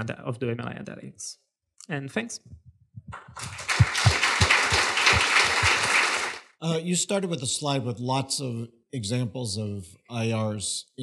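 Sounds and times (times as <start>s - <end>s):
audience applauding: 3.2s - 6.5s.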